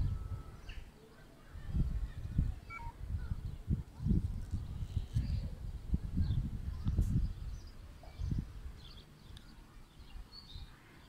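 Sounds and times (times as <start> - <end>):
low rumbling microphone noise: 0.0 - 0.9, 1.5 - 10.8
faint bird chirps: 0.0 - 3.8.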